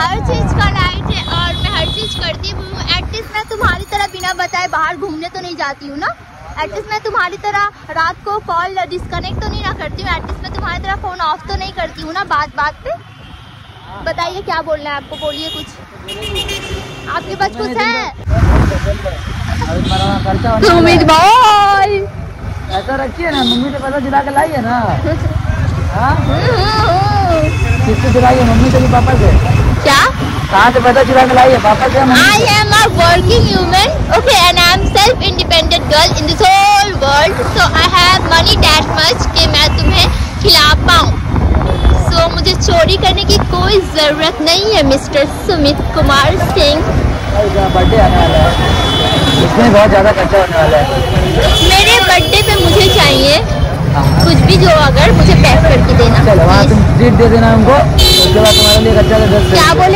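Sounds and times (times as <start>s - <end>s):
wind rushing over microphone: 0.0s - 3.9s, 8.8s - 12.1s, 18.2s - 22.6s, 31.6s - 58.0s
voices talking: 13.8s - 59.9s
motorcycle rumble: 24.8s - 59.9s.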